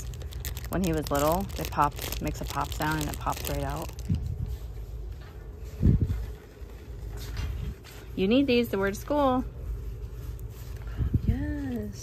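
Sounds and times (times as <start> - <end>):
faint handling rustles: 0.0 - 12.0
store background hum: 0.0 - 12.0.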